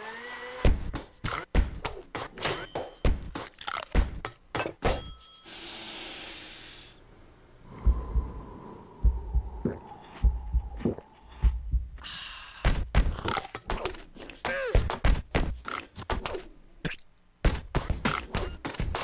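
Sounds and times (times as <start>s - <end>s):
deep thuds: 7.8s - 12.0s.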